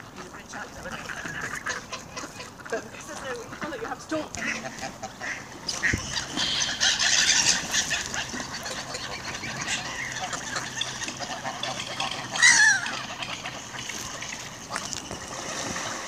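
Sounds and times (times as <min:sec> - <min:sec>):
geese ducks and gulls calling: 0:00.0 - 0:16.0.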